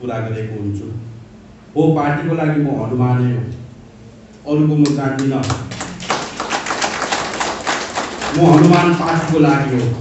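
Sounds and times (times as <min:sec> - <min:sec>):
audience applauding: 0:05.2 - 0:10.0.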